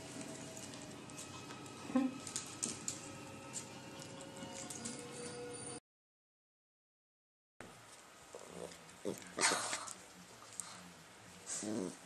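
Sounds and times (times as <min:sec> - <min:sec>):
dog growling softly: 0:08.3 - 0:12.0.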